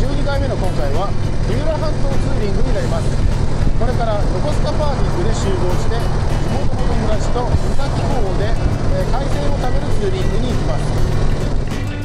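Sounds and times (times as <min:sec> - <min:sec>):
man talking: 0:00.0 - 0:11.0
wind rush: 0:00.0 - 0:11.8
motorcycle engine running: 0:00.0 - 0:12.0.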